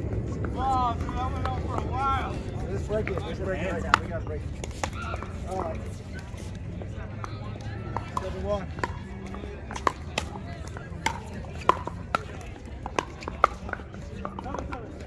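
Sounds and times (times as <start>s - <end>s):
paddles hitting plastic ball: 0.2s - 6.0s, 7.2s - 15.0s.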